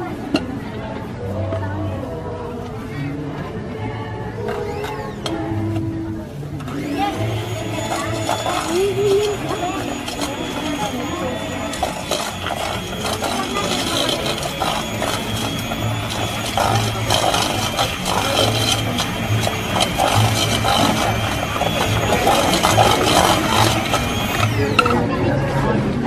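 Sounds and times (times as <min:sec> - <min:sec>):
electric mixer whining: 0:06.6 - 0:25.2.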